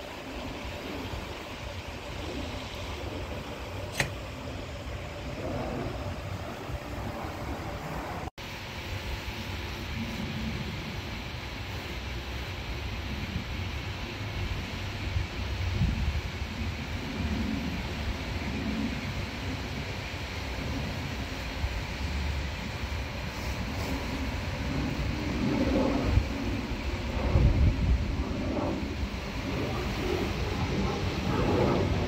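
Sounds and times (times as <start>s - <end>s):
jet engines passing overhead: 0.0s - 32.0s
wind buffeting microphone: 13.1s - 32.0s.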